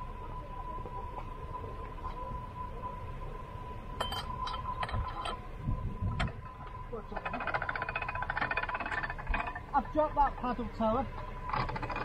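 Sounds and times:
low engine rumble: 0:00.0 - 0:12.0
metallic clinks: 0:04.0 - 0:05.4
ratchet pawl clicks: 0:07.2 - 0:09.7.

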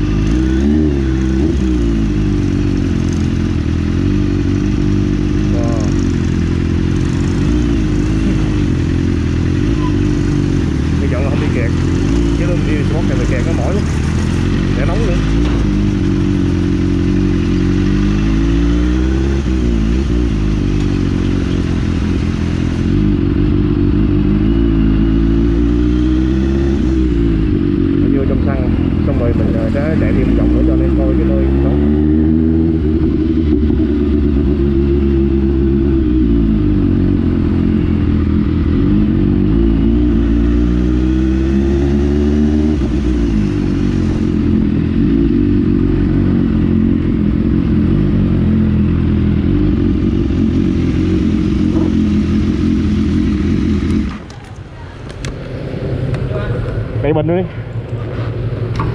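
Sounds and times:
motorcycle engine revving: 0:00.0 - 0:58.9.

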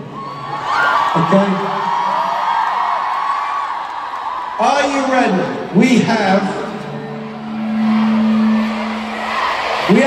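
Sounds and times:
arena crowd noise: 0:00.0 - 0:10.0
steady low note: 0:06.9 - 0:09.9.

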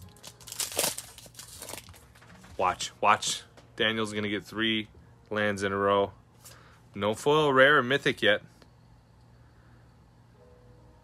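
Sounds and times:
foil wrapper crinkling and tearing: 0:00.0 - 0:02.6.

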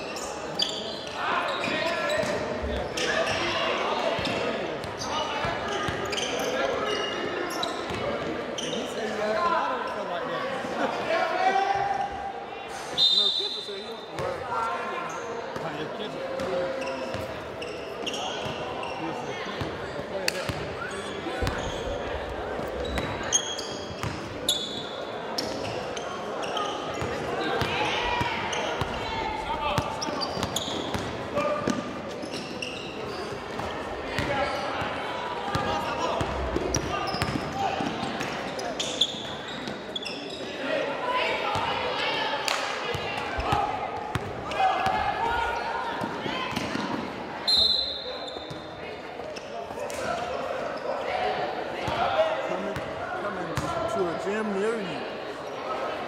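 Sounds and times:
shoe squeaks: 0:00.0 - 0:03.6, 0:05.0 - 0:08.0, 0:08.6 - 0:09.1, 0:16.8 - 0:19.3, 0:20.8 - 0:22.0, 0:22.8 - 0:27.0, 0:29.8 - 0:33.4, 0:36.7 - 0:37.7, 0:38.5 - 0:40.6, 0:47.4 - 0:48.7
shouts and chatter echoing: 0:00.0 - 0:56.0.

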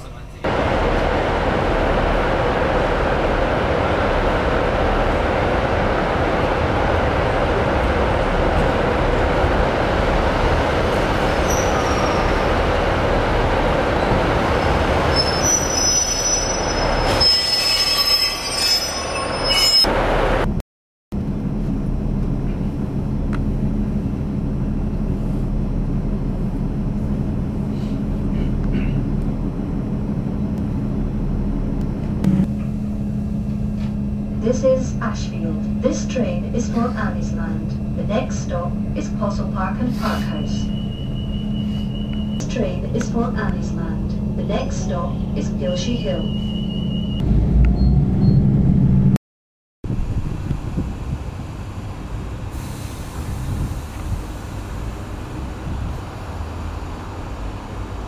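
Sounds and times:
diesel engine hum: 0:00.0 - 0:11.2, 0:21.2 - 0:49.2, 0:49.9 - 0:58.0
train engine and wheels rumbling: 0:00.0 - 0:20.6, 0:21.2 - 0:49.2, 0:49.8 - 0:58.0
high thin wheel squeal: 0:11.3 - 0:12.6, 0:15.0 - 0:19.9, 0:40.1 - 0:42.6, 0:45.9 - 0:47.2.

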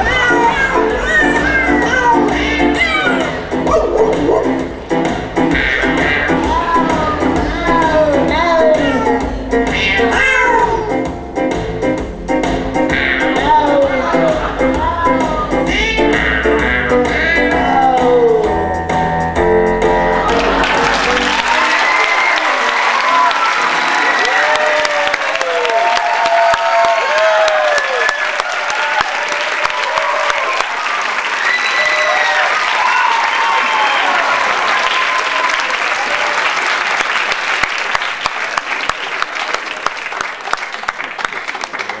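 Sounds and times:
music: 0:00.0 - 0:23.2
audience cheering and whooping: 0:20.2 - 0:39.8
audience clapping: 0:20.2 - 0:42.0.

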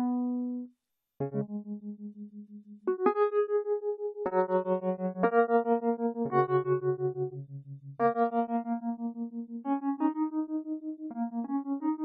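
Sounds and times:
electric piano chords with tremolo: 0:00.0 - 0:00.6, 0:01.2 - 0:12.0.

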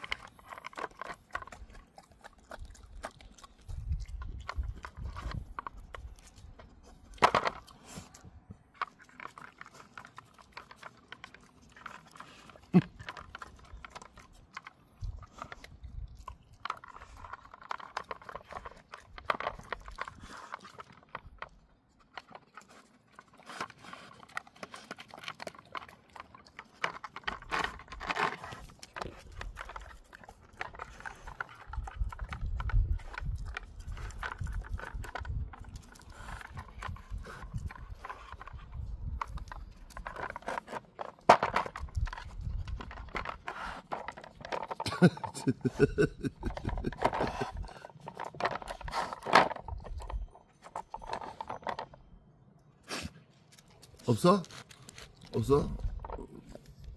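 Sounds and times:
puzzle toy and kibble rattling: 0:00.0 - 0:52.2, 0:53.7 - 0:56.9
dog licking: 0:01.2 - 0:06.6.

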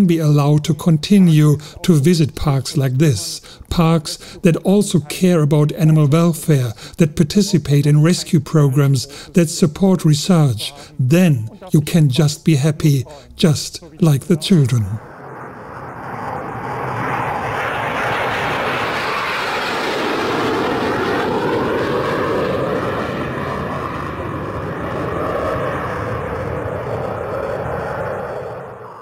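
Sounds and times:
jet engines passing: 0:00.0 - 0:29.0.

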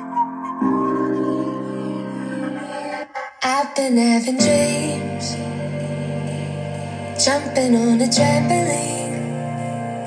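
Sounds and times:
music from motorcycle stereo: 0:00.0 - 0:10.0.

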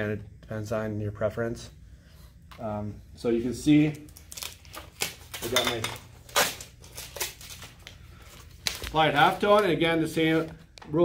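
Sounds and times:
paper rustling and crinkling: 0:03.9 - 0:10.8.

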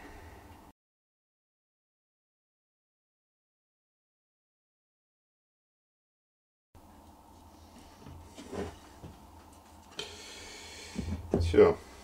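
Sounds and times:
wooden strips scuffing: 0:07.7 - 0:09.8.

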